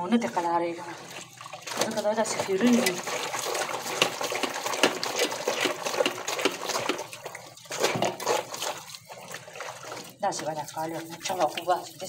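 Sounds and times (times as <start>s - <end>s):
water splashing in metal basin: 0.0s - 12.0s.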